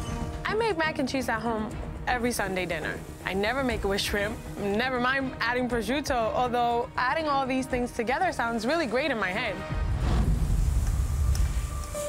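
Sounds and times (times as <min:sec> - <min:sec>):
deep rumbling whoosh: 0:09.8 - 0:11.7.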